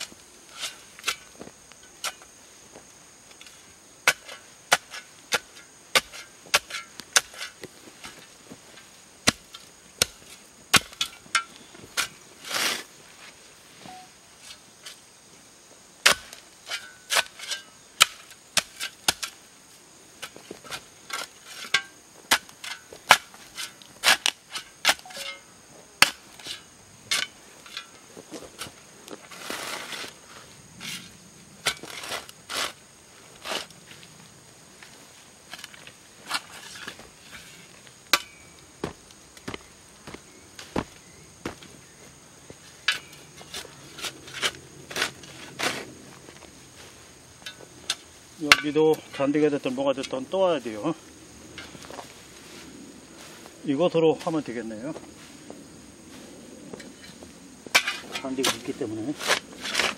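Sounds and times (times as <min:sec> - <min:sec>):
hand tools chopping into soil: 0:00.0 - 0:02.3, 0:03.4 - 0:12.9, 0:16.0 - 0:19.4, 0:20.2 - 0:30.2, 0:30.8 - 0:32.8, 0:38.1 - 0:41.7, 0:47.4 - 0:49.2, 0:57.7 - 0:59.9
shovel scraping sweep: 0:12.0 - 0:12.9, 0:22.4 - 0:25.4, 0:28.6 - 0:33.7.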